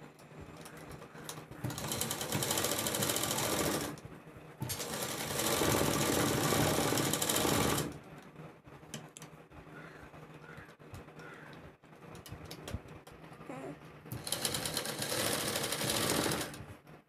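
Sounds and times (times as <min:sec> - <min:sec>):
sewing machine stitching: 0:00.6 - 0:04.0, 0:04.6 - 0:08.0, 0:14.1 - 0:16.6.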